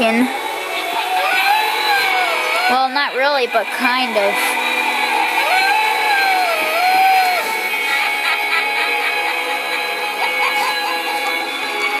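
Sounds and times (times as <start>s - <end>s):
spooky electronic music: 0.0s - 12.0s
wavering moaning tone: 0.0s - 12.0s
short rising notes: 0.3s - 8.8s.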